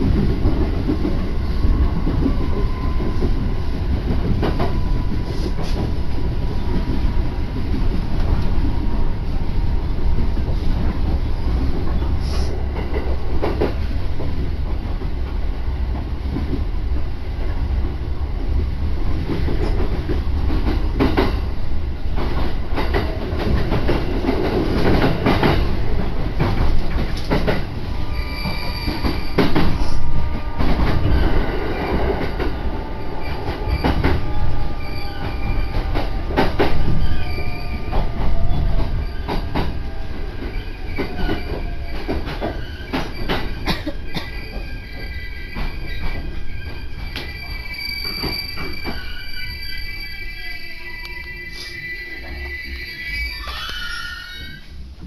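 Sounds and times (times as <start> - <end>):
train rumble: 0.0 - 55.0.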